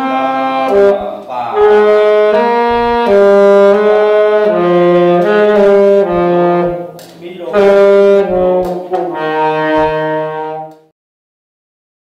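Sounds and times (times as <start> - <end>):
saxophone playing held notes: 0.0 - 10.9.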